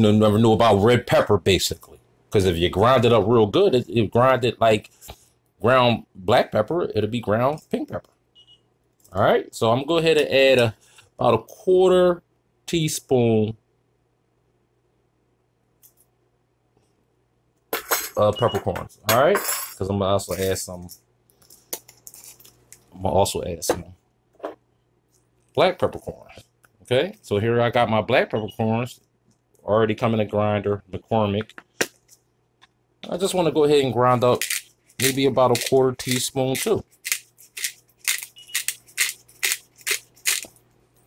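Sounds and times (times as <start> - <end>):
pepper grinder crunching clicks: 34.3 - 40.6.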